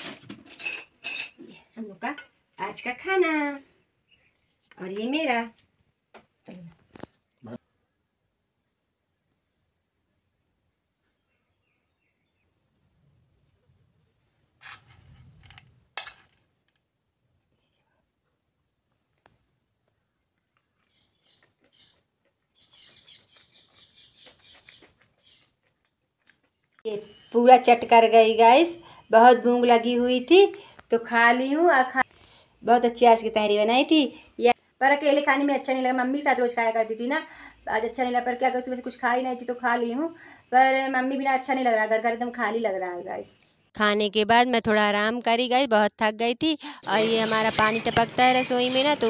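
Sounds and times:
metal spoon clinking on plate: 0.5s - 1.4s
soft chewing clicks: 18.9s - 26.9s
rapid bird chirping: 20.8s - 25.7s, 46.6s - 49.0s.

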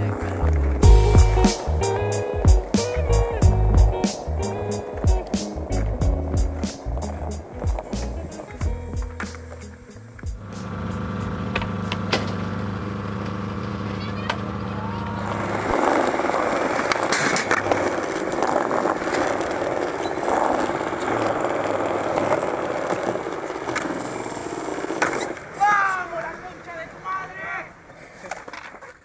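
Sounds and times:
skateboard wheels rolling on concrete: 0.0s - 29.0s
skateboard clacks: 1.4s - 10.6s, 11.4s - 29.0s.

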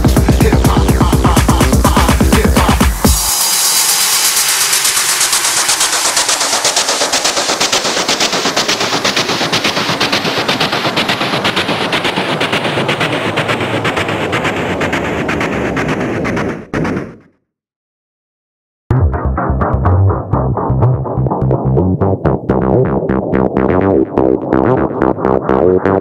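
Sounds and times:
electronic dance music build-up: 0.0s - 17.3s, 18.9s - 26.0s.

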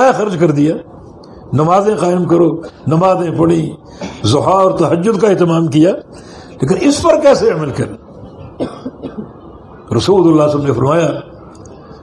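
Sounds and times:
person coughing: 4.0s - 4.3s, 8.6s - 9.4s.

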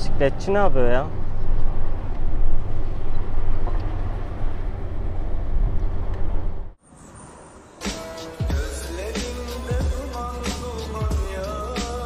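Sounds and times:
road noise: 0.0s - 12.0s.

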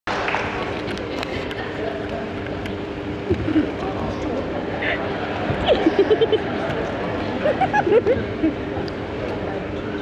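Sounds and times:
arena audience murmur: 0.1s - 10.0s
scattered voices: 0.5s - 10.0s.

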